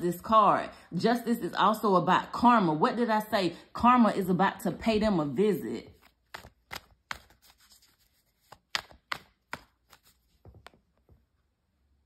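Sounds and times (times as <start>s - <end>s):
fingers tapping on cards: 6.0s - 7.6s, 8.4s - 11.0s.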